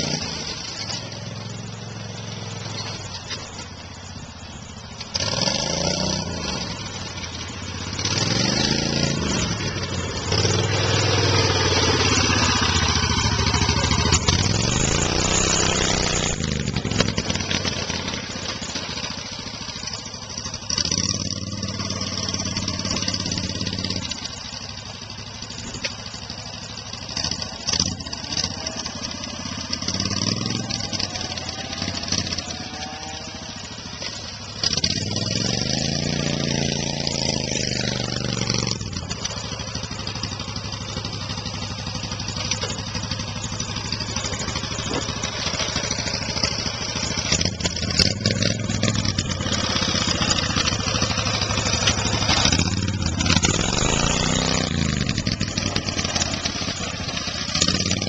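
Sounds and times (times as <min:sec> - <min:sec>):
golf cart engine revving: 0:00.0 - 0:58.0.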